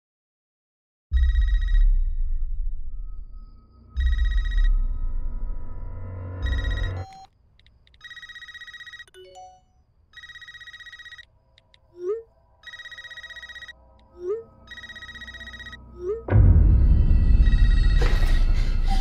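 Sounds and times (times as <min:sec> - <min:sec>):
phone trilling ring: 0:06.4 - 0:07.3, 0:08.0 - 0:11.3, 0:11.9 - 0:16.3.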